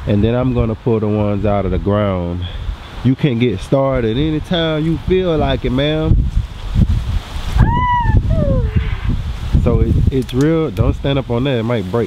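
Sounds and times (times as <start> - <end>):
wind rumbling on microphone: 0.0 - 12.0
high-pitched voice-like call: 7.6 - 9.1.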